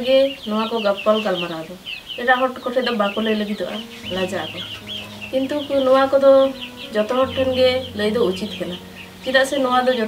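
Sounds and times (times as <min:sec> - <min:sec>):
woman talking: 0:00.0 - 0:04.7, 0:05.3 - 0:10.0
chickens chirping: 0:00.1 - 0:10.0.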